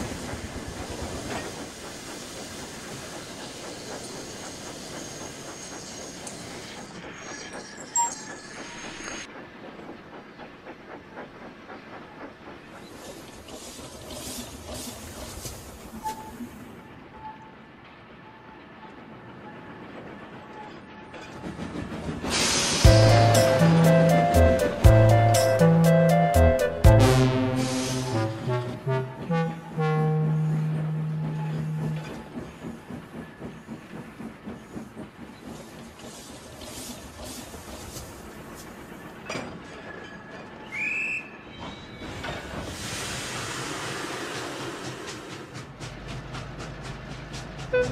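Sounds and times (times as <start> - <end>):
steam locomotive chuffing: 0.0 - 17.4, 19.0 - 47.9
train wheels clattering on rails: 0.0 - 26.2, 28.1 - 47.9.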